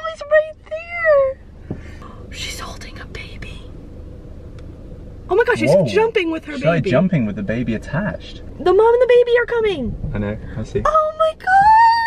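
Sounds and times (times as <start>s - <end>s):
car cabin hum: 0.0s - 12.0s
dull thump: 1.6s - 2.0s.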